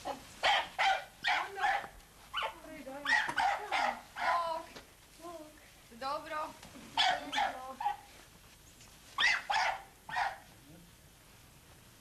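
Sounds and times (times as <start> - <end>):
dog barking: 0.4 - 4.5, 7.0 - 8.1, 9.2 - 10.5.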